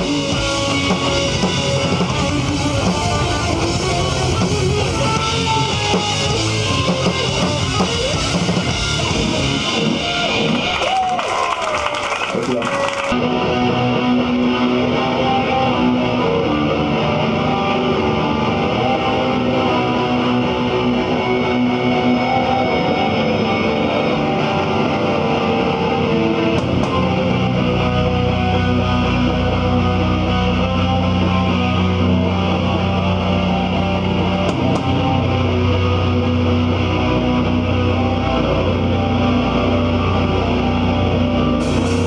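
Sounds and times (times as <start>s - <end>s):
hardcore band playing loudly: 0.0s - 42.0s.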